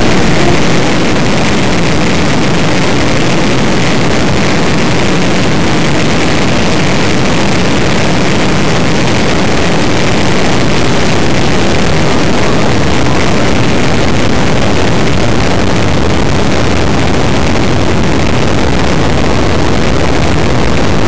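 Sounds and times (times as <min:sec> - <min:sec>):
race car engine and wind noise: 0:00.0 - 0:21.0.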